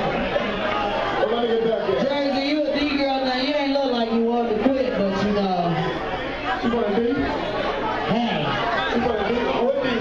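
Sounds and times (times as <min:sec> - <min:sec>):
crowd chatter: 0:00.0 - 0:10.0
people talking over one another: 0:00.0 - 0:10.0.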